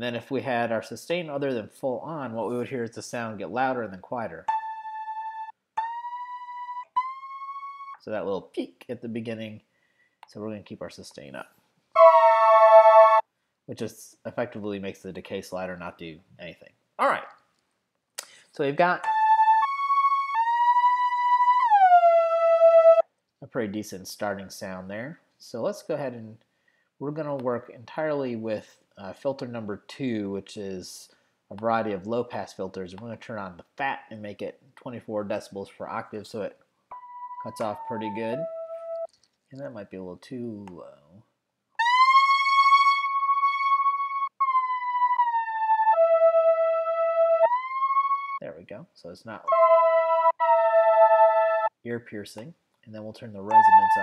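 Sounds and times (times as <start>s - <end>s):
synthesizer lead with glide: 4.5s - 8.0s, 12.0s - 13.2s, 19.0s - 23.0s, 41.8s - 48.4s, 49.5s - 51.7s, 53.5s - 54.0s.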